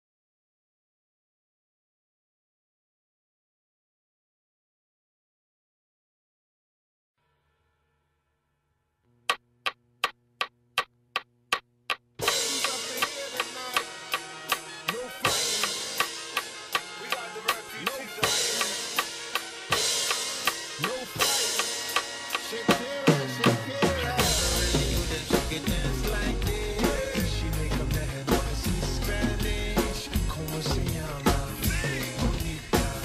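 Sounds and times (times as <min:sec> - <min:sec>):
drum kit playing rock beat: 0:12.2 - 0:33.0
heavy low bass line: 0:24.1 - 0:33.0.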